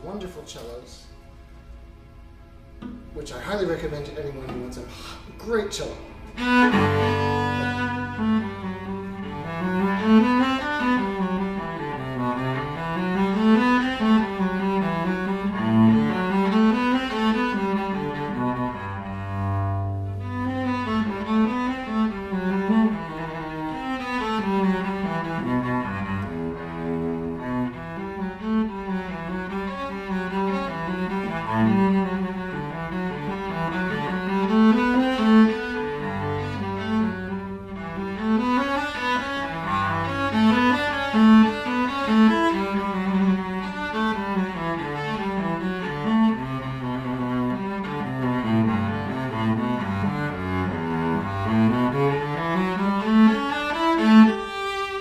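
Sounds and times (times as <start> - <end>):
solo cello bowed: 1.1 - 55.0.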